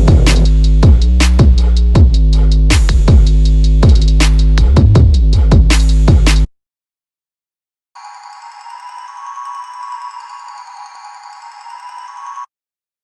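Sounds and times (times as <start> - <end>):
bell-like high chord: 8.0 - 12.5.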